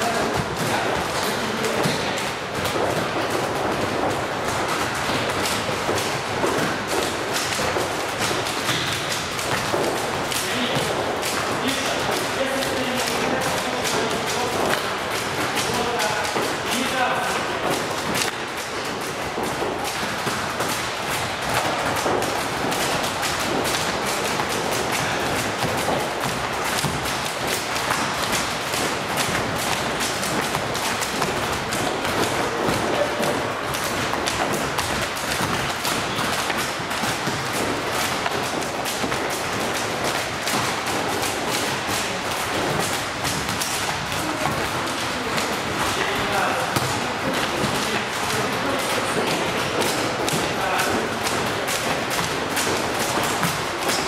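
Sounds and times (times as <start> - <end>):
volleyballs thudding on wooden floor: 0.0 - 54.0.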